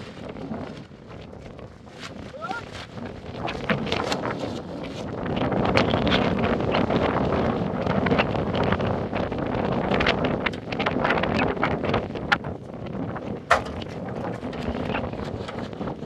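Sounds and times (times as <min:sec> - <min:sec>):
wind buffeting microphone: 0:00.0 - 0:16.0
short crunches and knocks: 0:13.4 - 0:15.7.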